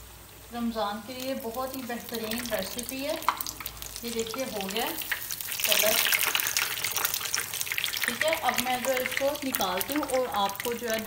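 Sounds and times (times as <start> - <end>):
food sizzling in hot oil: 0.6 - 11.0.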